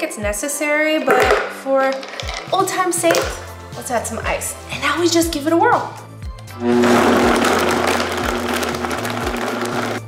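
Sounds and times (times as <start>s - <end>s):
blender crushing ice: 6.7s - 10.0s.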